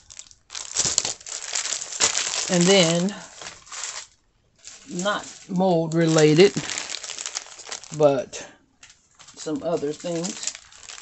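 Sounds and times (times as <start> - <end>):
plastic crinkling: 0.0 - 11.0.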